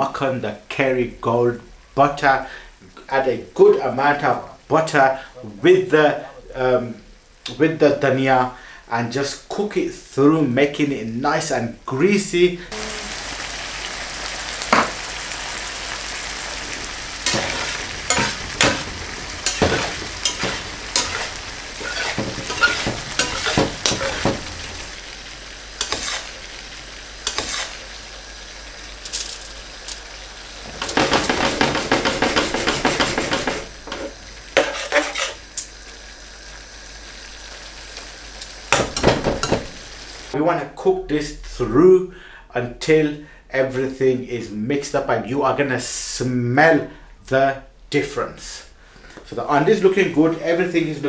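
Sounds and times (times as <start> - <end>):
chicken sizzling in pan: 1.6 - 11.9, 12.6 - 40.4
spatula scraping metal pan: 17.2 - 24.6, 25.8 - 26.4, 27.2 - 27.8, 30.8 - 35.4.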